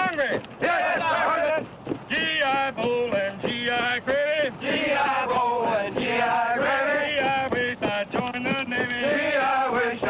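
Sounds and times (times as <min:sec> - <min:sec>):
men singing marching cadence: 0:00.0 - 0:10.0.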